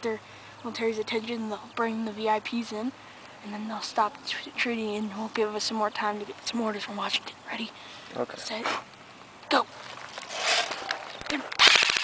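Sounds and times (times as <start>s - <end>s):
airsoft gun firing: 11.5s - 12.0s.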